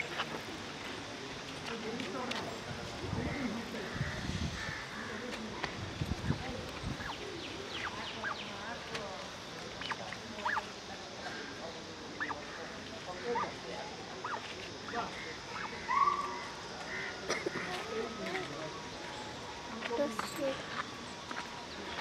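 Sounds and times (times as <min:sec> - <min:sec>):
high chirping calls: 0:06.8 - 0:08.7, 0:09.8 - 0:10.8, 0:12.1 - 0:12.4.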